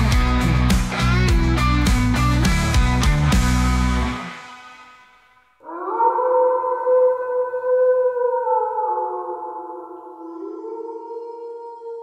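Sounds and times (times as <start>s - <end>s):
music: 0.0s - 5.6s.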